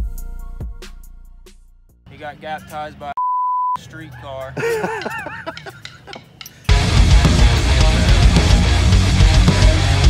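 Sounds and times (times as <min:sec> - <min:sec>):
censor bleep: 0:03.2 - 0:03.8.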